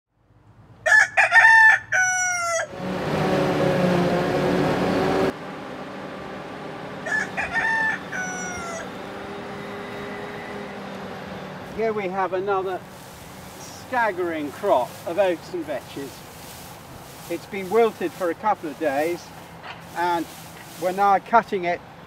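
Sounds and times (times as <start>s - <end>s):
rooster crowing: 0.8s - 2.8s, 7.0s - 10.5s
machine humming: 2.7s - 21.0s.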